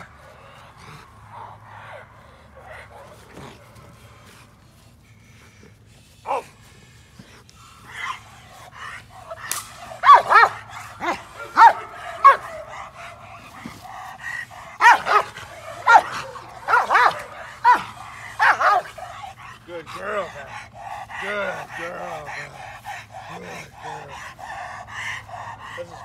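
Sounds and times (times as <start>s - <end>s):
dog barking: 1.3s - 3.8s, 9.2s - 13.9s, 14.5s - 19.2s.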